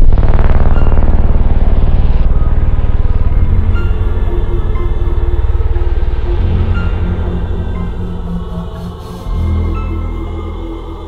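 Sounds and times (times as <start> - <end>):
low rapidly pulsing rumble: 0.0 - 11.0.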